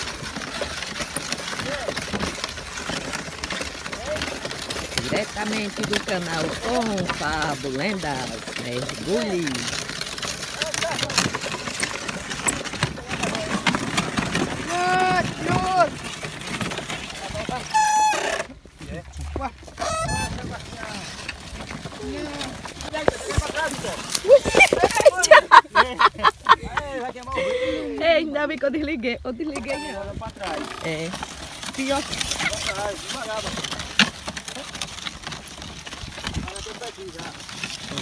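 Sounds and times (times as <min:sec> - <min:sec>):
wooden cart knocks and clicks: 0:00.0 - 0:28.8, 0:29.4 - 0:38.0.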